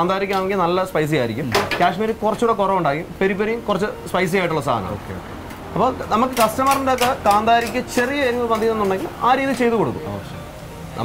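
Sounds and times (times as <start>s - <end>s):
person speaking: 0.0s - 10.4s.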